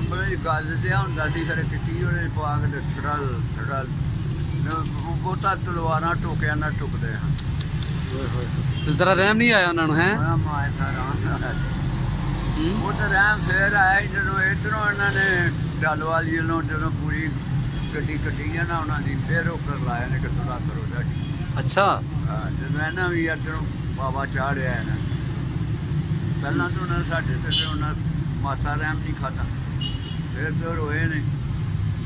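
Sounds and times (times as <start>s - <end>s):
elderly man speaking: 0.0s - 4.0s, 4.6s - 11.8s, 12.4s - 25.1s, 26.4s - 29.6s, 30.3s - 31.3s.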